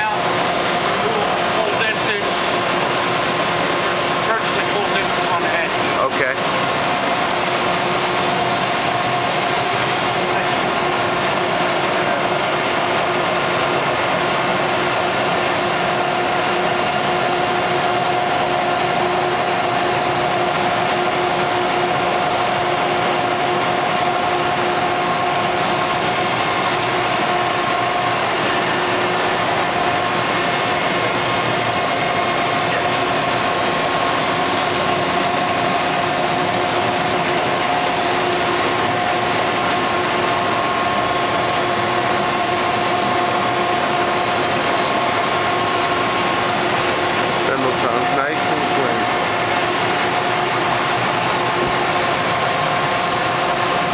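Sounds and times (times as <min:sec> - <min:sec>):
industrial machinery hum: 0:00.0 - 0:53.9
mid-pitched machine whine: 0:00.0 - 0:53.9.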